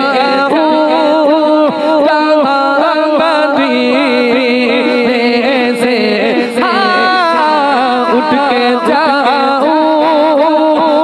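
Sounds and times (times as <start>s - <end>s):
man singing devotional song: 0.0s - 11.0s.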